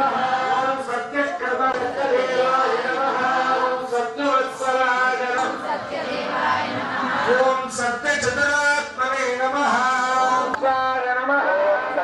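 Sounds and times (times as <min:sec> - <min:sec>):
priest chanting: 0:00.0 - 0:12.0.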